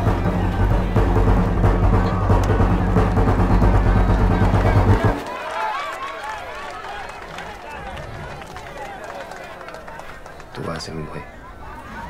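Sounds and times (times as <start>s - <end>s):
trailer music with deep drums: 0.0s - 5.2s
crowd murmur: 0.0s - 12.0s.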